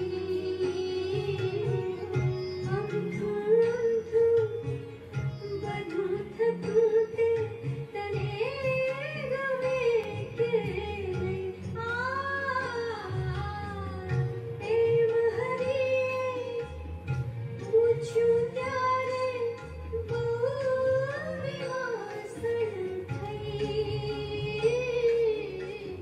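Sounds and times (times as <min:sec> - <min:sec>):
person singing devotional melody: 0:00.0 - 0:26.0.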